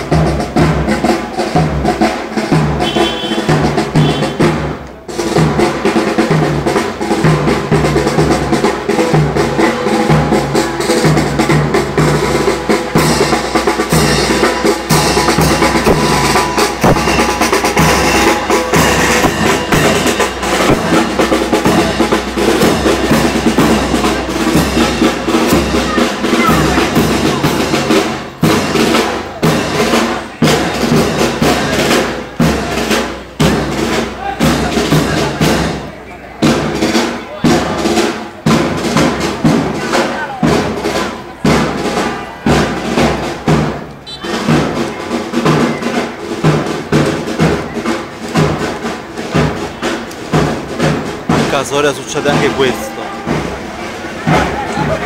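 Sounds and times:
crowd voices: 0:00.0 - 0:55.0
drum corps marching beat: 0:00.0 - 0:55.0
snare drum rolls: 0:00.0 - 0:55.0.

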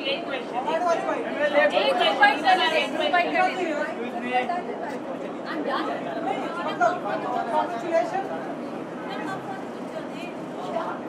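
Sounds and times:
indistinct chatter: 0:00.0 - 0:11.0.

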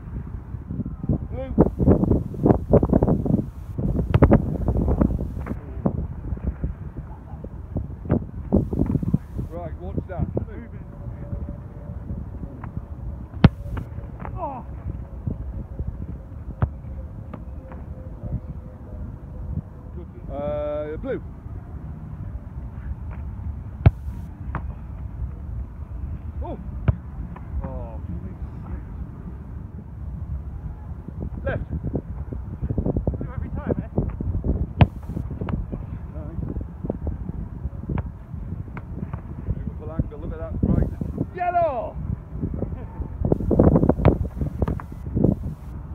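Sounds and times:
wind rumble on microphone: 0:00.0 - 0:45.9
football impact thud: 0:01.8 - 0:05.6, 0:08.6 - 0:09.4, 0:13.4 - 0:14.3, 0:23.8 - 0:24.7, 0:34.8 - 0:35.2, 0:43.4 - 0:45.4.

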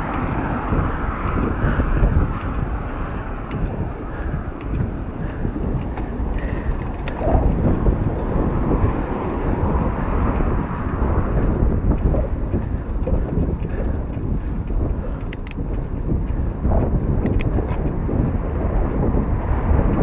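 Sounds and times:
bike road noise: 0:00.0 - 0:20.0
wind rushing over microphone: 0:00.0 - 0:20.0.

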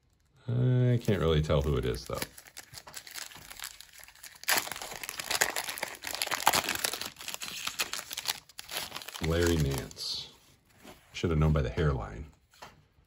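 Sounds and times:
wrapper crinkling and tearing: 0:01.0 - 0:10.2.

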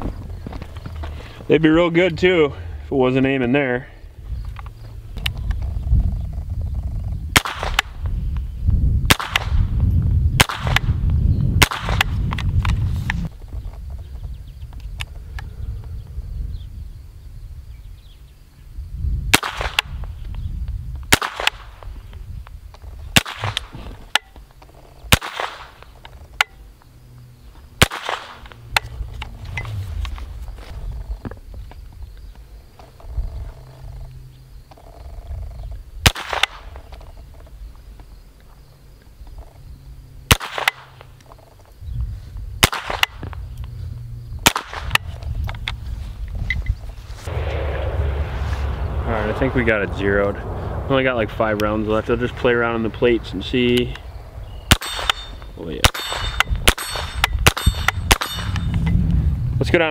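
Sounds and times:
pistol shots: 0:07.3 - 0:07.9, 0:09.1 - 0:09.6, 0:10.4 - 0:10.9, 0:11.6 - 0:12.1, 0:19.3 - 0:19.9, 0:25.1 - 0:25.8, 0:27.8 - 0:28.5, 0:36.0 - 0:36.7, 0:40.3 - 0:40.9, 0:42.6 - 0:43.2, 0:44.4 - 0:45.0, 0:54.7 - 0:58.6.

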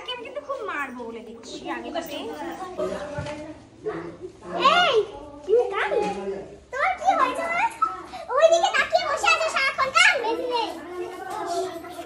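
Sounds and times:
children talking: 0:00.0 - 0:12.0.

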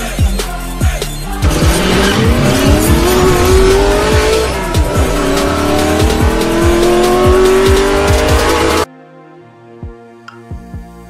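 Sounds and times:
electronic music with heavy bass: 0:00.0 - 0:08.9
racing car engine revving: 0:01.2 - 0:08.9.

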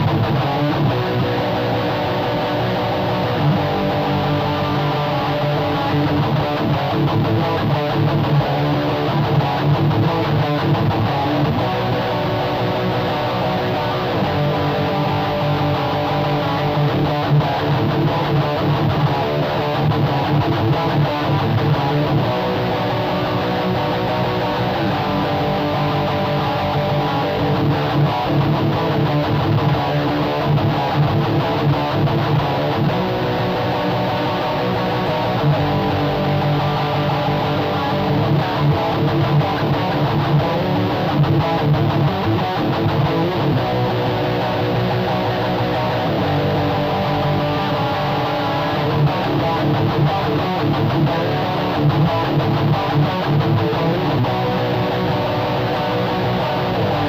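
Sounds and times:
electric guitar fast scratch part: 0:00.0 - 0:57.0.

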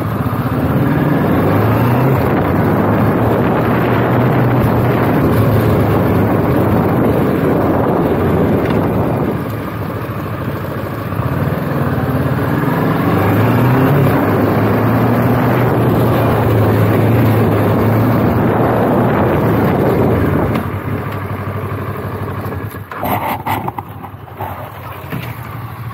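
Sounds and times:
motorcycle engine running: 0:00.0 - 0:25.9.

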